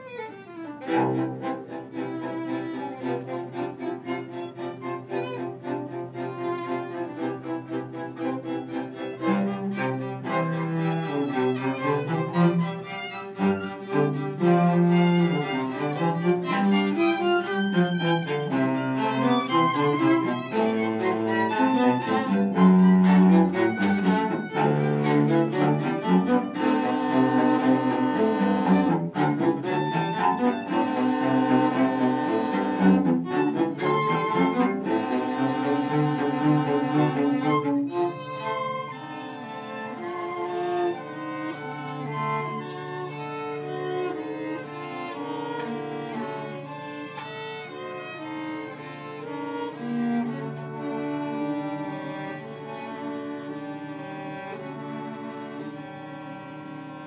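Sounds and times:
string quartet playing: 0.0s - 57.0s.

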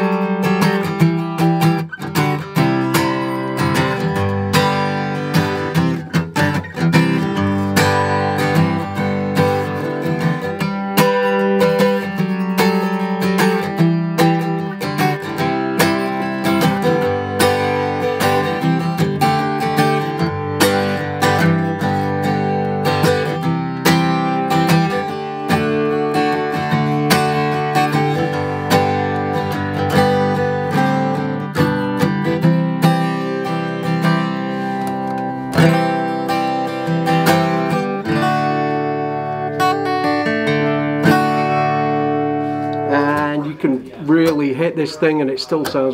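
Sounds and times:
acoustic guitar strummed: 0.0s - 45.9s.

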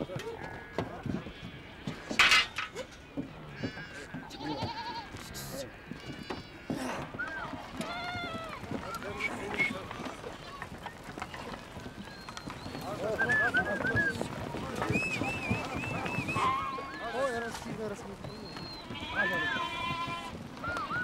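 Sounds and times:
goats and sheep bleating: 0.1s - 21.0s.

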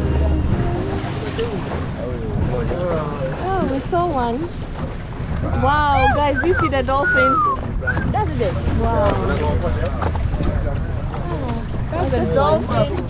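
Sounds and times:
boat engine rumble: 0.0s - 13.0s
wind buffeting microphone: 0.0s - 13.0s
people talking: 5.6s - 13.0s.

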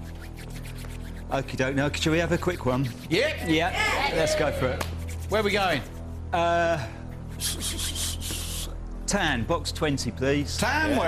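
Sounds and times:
short hissing rubs: 0.0s - 3.4s, 4.9s - 6.4s, 7.0s - 8.7s
low background music drone: 0.0s - 11.0s.

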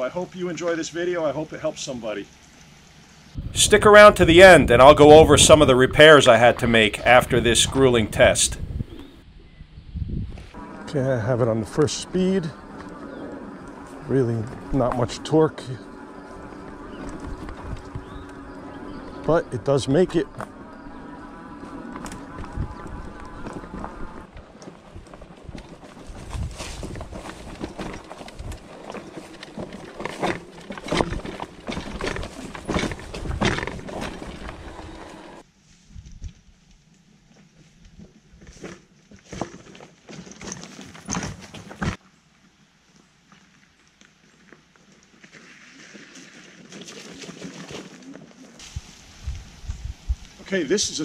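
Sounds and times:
electric motor whine: 10.6s - 24.3s, 31.6s - 35.4s
scooter rattling and knocking: 11.8s - 35.4s
crunches on rocky trail: 15.8s - 35.4s, 36.0s - 42.1s, 42.9s - 48.7s
faint hiss: 48.6s - 51.0s.

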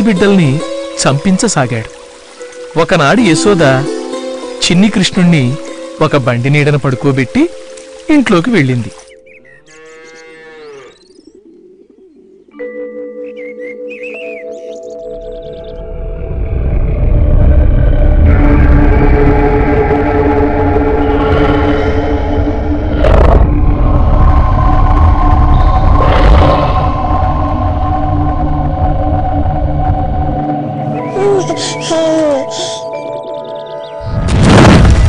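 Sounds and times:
cow mooing: 9.7s - 11.1s
dramatic music chords: 12.6s - 35.0s
heavy low rumble: 15.8s - 31.0s.

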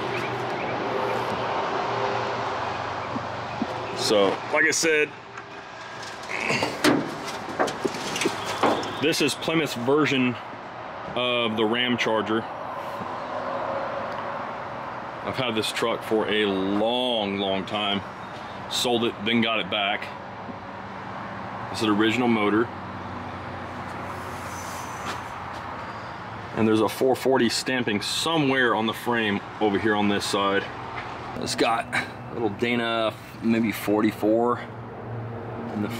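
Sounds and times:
metal scrape: 5.6s - 9.0s
car hood clunk: 6.0s - 9.0s.

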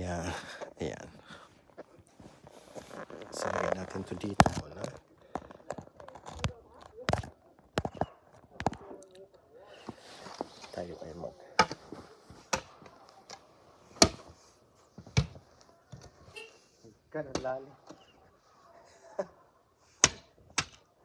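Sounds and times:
knocks and handling noises: 1.6s - 9.0s, 11.5s - 16.4s.

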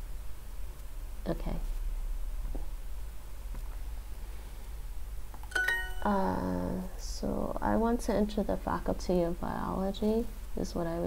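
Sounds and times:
bright two-note chime: 5.5s - 6.3s.

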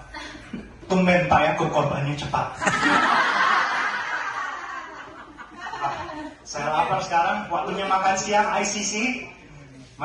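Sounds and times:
roomful of people laughing: 2.6s - 6.6s.

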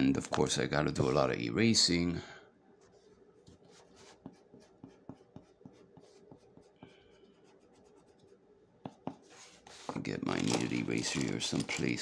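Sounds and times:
eraser rubbing on paper: 2.8s - 10.0s.

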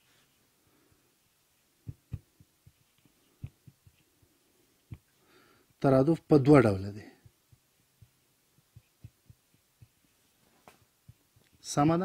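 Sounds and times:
marker tapping on whiteboard: 1.8s - 4.3s, 4.9s - 5.1s, 7.2s - 10.1s.

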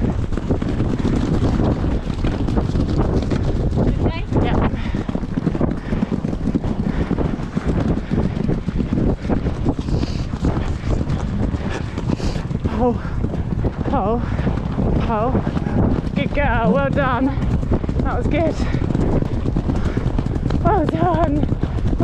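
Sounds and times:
hooves thudding on turf: 0.0s - 22.0s
wind buffeting microphone: 0.0s - 22.0s.

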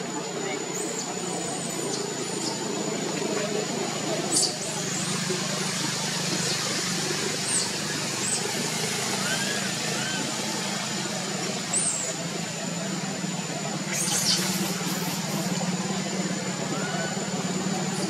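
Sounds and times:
distant voices: 0.0s - 18.0s
engine-like hum: 0.0s - 18.0s
soft arching calls: 4.2s - 10.6s, 13.9s - 15.6s.

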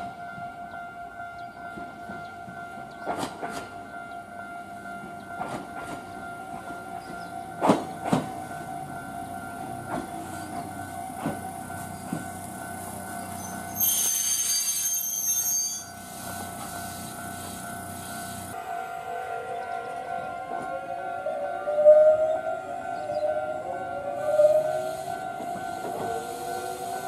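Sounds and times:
train braking: 7.0s - 27.0s.

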